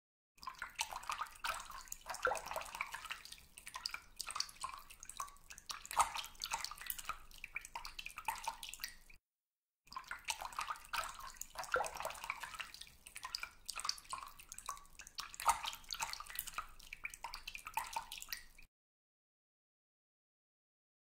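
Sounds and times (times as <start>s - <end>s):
bath water sloshing: 0.4s - 9.2s, 9.9s - 18.7s
water splashes and drips: 0.4s - 9.2s, 9.9s - 18.7s.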